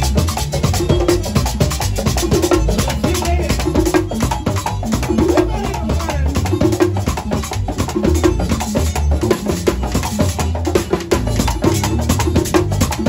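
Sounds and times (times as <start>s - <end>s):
congas: 0.0s - 13.0s
live latin band music: 0.0s - 13.0s
pulsing bass line: 0.0s - 13.0s.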